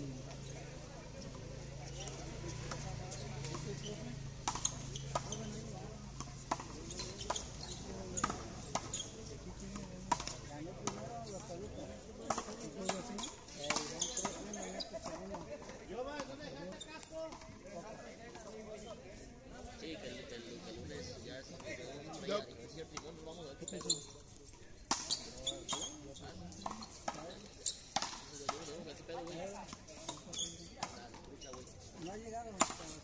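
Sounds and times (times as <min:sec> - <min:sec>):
low murmur of voices: 0:00.0 - 0:33.0.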